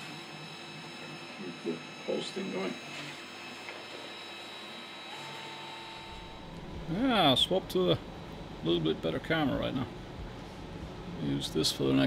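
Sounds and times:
thin high whines: 5.1 - 7.7
faint electrical hum: 5.2 - 12.0
low rumble: 6.2 - 7.6.

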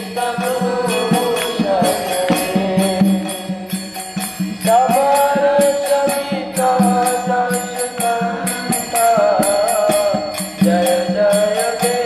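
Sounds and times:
devotional chanting: 0.0 - 12.0
metallic percussion beat: 0.0 - 12.0.

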